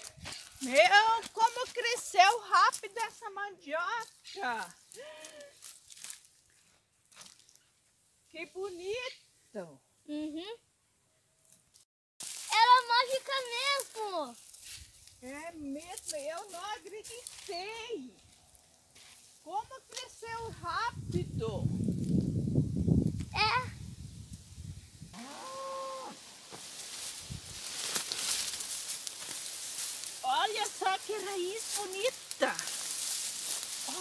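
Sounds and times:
earth and stems rustling: 0:00.0 - 0:08.4, 0:11.4 - 0:22.2, 0:25.2 - 0:34.0
high-pitched voice calling out: 0:23.3 - 0:23.8.

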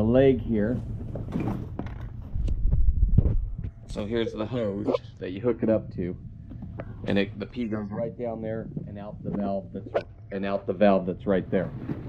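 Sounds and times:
low rumble of movement: 0:00.0 - 0:12.0.

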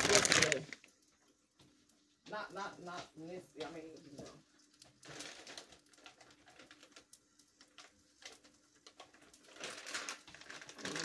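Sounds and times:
plastic bag crinkling: 0:00.0 - 0:01.0, 0:04.6 - 0:11.0
clicks and rustles of handling: 0:00.0 - 0:11.0.

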